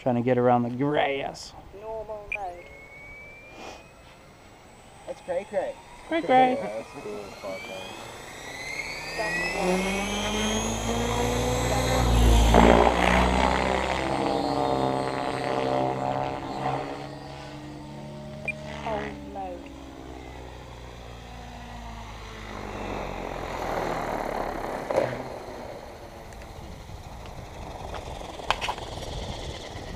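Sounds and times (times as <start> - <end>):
rc helicopter rotor drone: 0.0 - 29.9.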